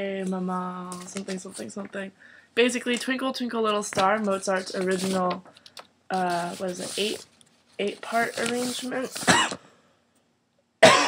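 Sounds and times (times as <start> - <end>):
woman clearing her throat: 9.2 - 9.6
woman coughing: 9.2 - 9.6.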